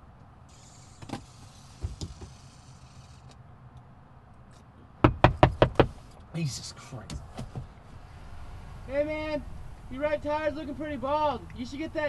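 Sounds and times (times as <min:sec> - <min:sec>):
knuckles rapping on car door: 0:05.0 - 0:06.0
car interior hum: 0:05.0 - 0:12.0.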